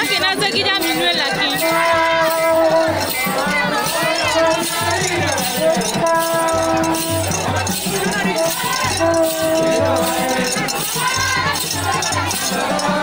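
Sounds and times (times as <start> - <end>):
group singing: 0.0 - 13.0
rattling percussion: 0.0 - 13.0.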